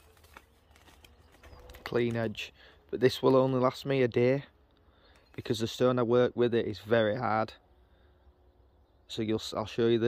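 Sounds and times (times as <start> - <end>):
man speaking: 1.8 - 4.6, 5.4 - 7.6, 9.1 - 10.0
faint steady tone: 6.3 - 9.6.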